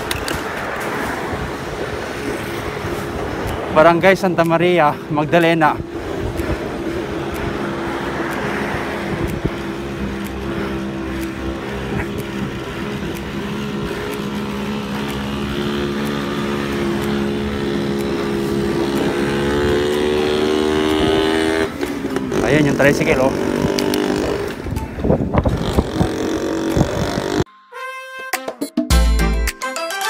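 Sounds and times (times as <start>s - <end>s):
motorcycle engine running: 4.4s - 27.4s.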